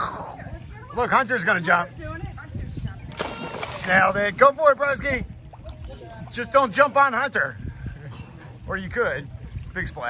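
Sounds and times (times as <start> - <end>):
child splashing into pool: 3.1 - 4.2.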